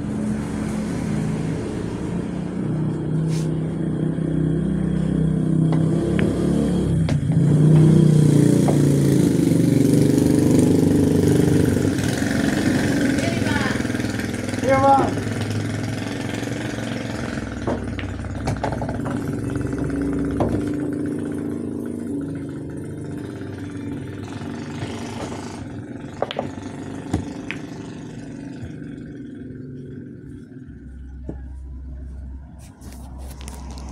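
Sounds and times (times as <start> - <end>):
passing vehicle engine: 0.0 - 33.9
pool balls knocking together: 15.2 - 23.3, 23.9 - 28.8
cue striking cue ball: 26.2 - 27.8.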